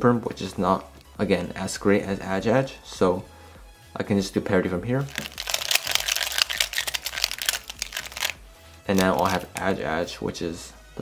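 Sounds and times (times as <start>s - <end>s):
plastic puzzle clicking: 5.2s - 9.6s.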